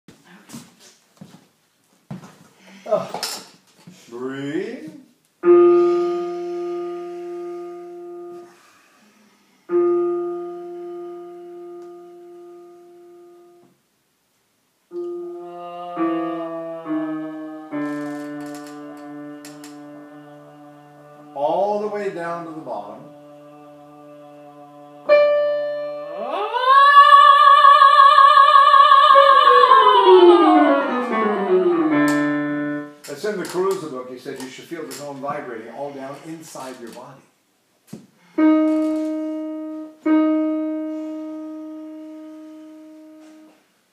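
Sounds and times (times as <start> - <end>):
piano long held notes: 5.4 - 8.7, 9.6 - 13.7, 14.9 - 33.1, 38.4 - 43.6
soprano voice gliding downward: 14.9 - 32.9.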